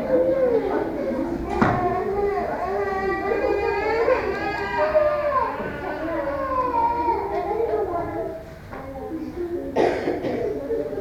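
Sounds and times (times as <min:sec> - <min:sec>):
young child crying: 0:01.8 - 0:07.8.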